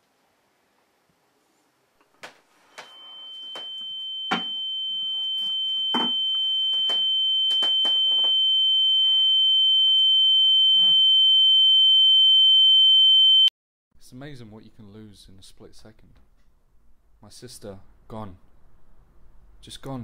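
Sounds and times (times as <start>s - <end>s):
fainter lower tone: 2.6s - 11.8s
high-pitched ringing tone: 2.8s - 13.5s.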